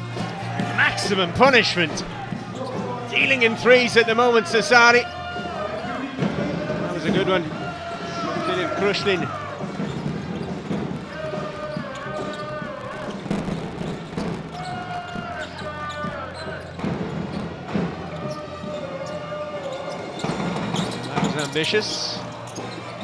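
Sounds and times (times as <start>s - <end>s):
crowd chanting: 0.0s - 21.3s.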